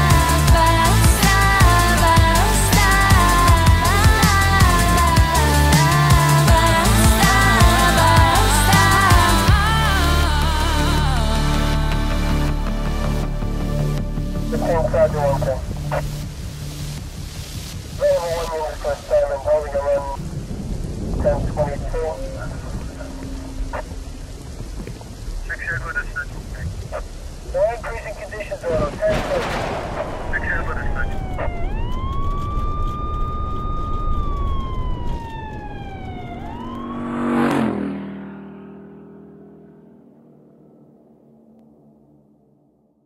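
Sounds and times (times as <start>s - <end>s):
steady rain-like noise: 0.0s - 11.5s, 13.8s - 36.5s
siren wailing: 22.1s - 24.4s, 30.3s - 39.4s.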